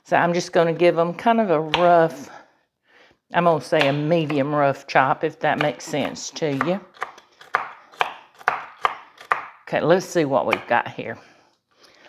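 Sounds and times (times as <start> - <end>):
knife chopping on wooden board: 1.6 - 2.0, 3.8 - 4.4, 5.6 - 9.6.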